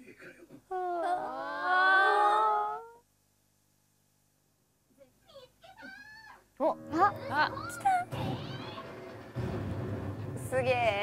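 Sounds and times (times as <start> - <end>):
women's wordless vocal reactions: 0.7 - 3.1
excited exclamation: 0.8 - 3.0.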